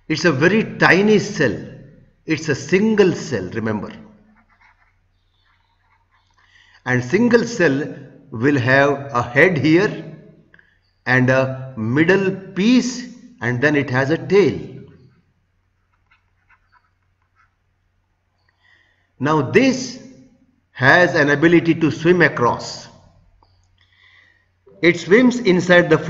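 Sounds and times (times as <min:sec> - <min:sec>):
person speaking: 0:00.0 - 0:04.8, 0:06.8 - 0:10.0, 0:24.7 - 0:26.0.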